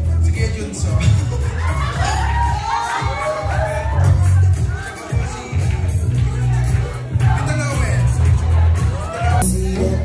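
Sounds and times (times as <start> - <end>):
crowd shouting and cheering: 0.0 - 10.0
loud music with heavy bass: 0.0 - 10.0.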